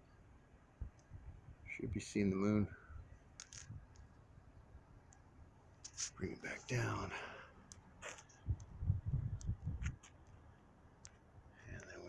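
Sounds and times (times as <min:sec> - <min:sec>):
faint clicks: 0:03.4 - 0:04.2, 0:09.4 - 0:12.0.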